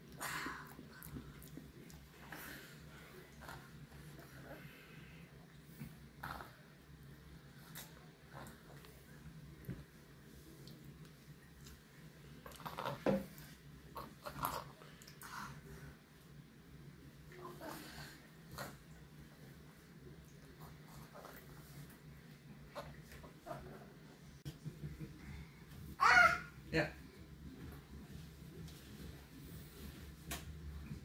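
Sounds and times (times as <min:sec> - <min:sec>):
low room hum: 0:00.0 - 0:31.0
toddler chewing noises: 0:12.4 - 0:15.6
child making sounds: 0:26.0 - 0:26.5.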